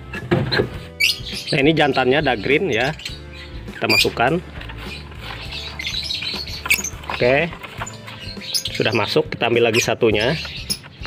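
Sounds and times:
bird squawking: 1.0s - 11.0s
wire mesh scraping and rattling: 3.8s - 11.0s.

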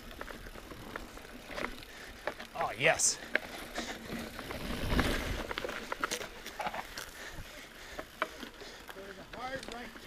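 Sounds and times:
tyres on dirt and rock: 0.0s - 10.0s
bike rattling clicks: 0.1s - 10.0s.

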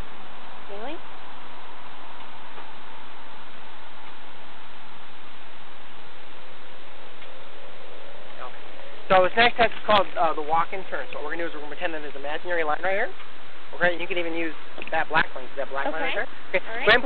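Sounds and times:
wireless microphone hiss: 0.0s - 17.0s.

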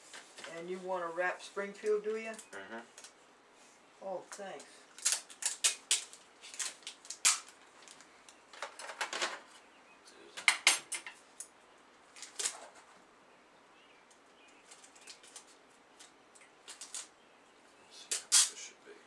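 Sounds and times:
paper rustling and crinkling: 4.9s - 9.6s, 12.1s - 13.0s, 14.6s - 17.1s.

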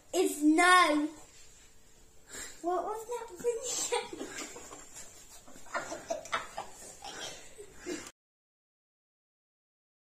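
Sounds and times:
child talking: 0.1s - 1.3s, 2.6s - 4.4s.

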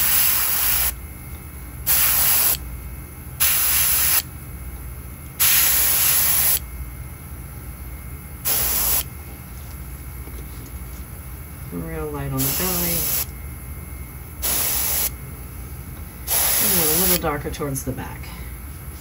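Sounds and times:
airbrush spraying hiss: 0.0s - 1.0s, 1.9s - 2.6s, 3.4s - 4.2s, 5.4s - 6.6s, 8.4s - 9.1s, 12.4s - 13.3s, 14.4s - 15.2s, 16.3s - 17.2s.

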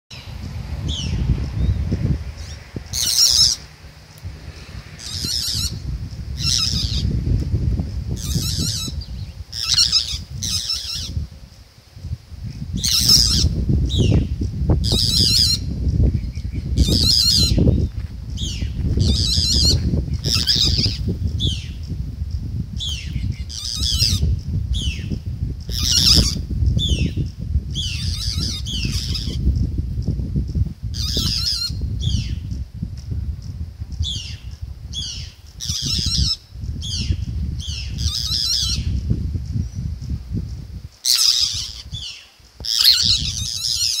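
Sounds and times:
bird calling: 2.4s - 3.7s, 5.0s - 5.8s, 8.2s - 11.2s, 41.0s - 44.0s.

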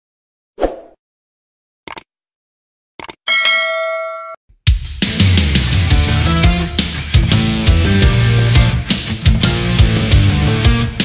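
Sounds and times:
notification bell ding: 3.3s - 4.4s.

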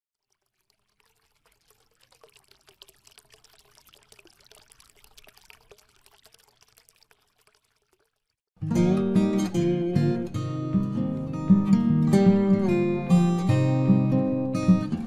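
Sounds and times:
faint trickling crackle: 0.1s - 8.5s.

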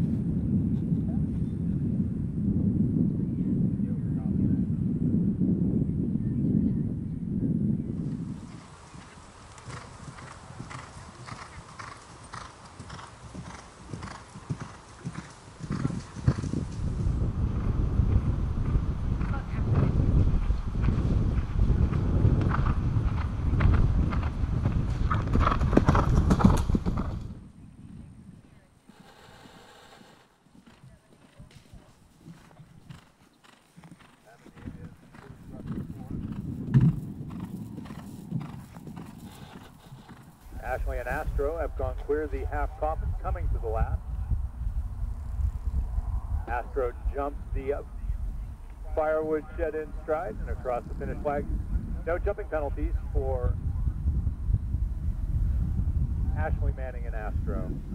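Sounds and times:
horse hoofbeats galloping on turf: 8.1s - 44.0s.

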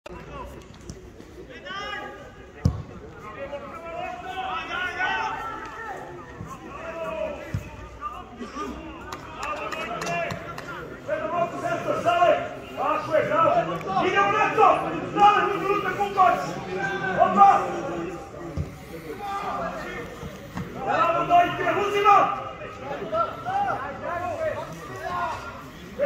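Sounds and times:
ball being kicked: 2.6s - 2.9s.

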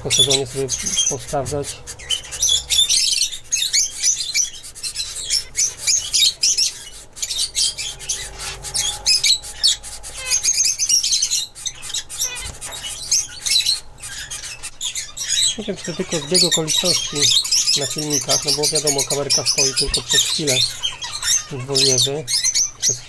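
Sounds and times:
finches chirping: 0.0s - 23.0s.

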